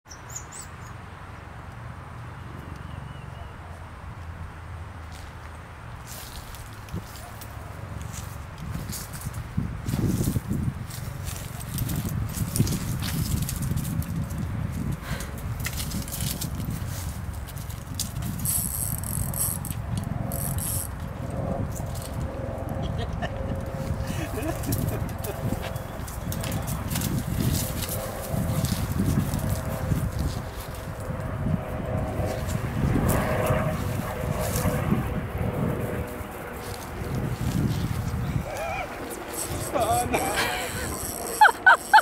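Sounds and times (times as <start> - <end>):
dog scampering on grass and gravel: 6.0 - 14.9, 24.4 - 31.0, 35.6 - 38.2
wind buffeting microphone: 8.1 - 41.7.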